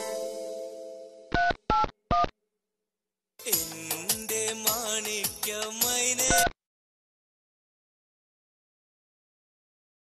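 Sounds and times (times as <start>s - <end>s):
song's held chord: 0.0s - 1.3s.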